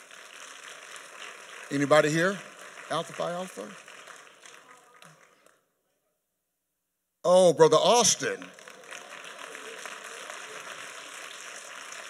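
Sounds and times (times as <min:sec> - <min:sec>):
crowd clapping steadily: 0:00.0 - 0:05.6, 0:07.8 - 0:12.0.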